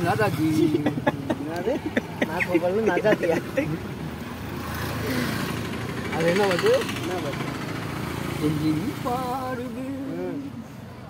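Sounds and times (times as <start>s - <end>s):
vehicle passing: 0.0s - 11.0s
man talking and laughing: 0.2s - 4.0s.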